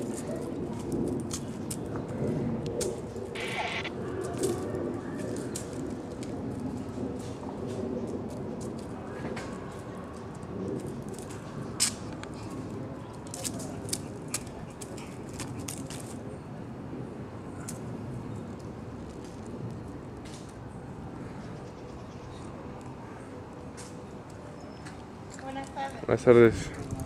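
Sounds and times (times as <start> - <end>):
low outdoor background noise: 0.0 - 27.0.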